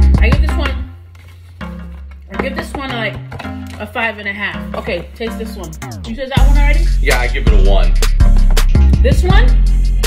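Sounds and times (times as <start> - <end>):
music with vocals and heavy bass: 5.3 - 10.0.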